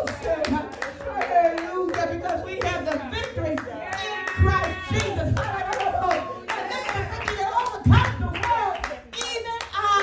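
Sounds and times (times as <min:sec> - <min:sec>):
hands clapping: 0:00.0 - 0:10.0.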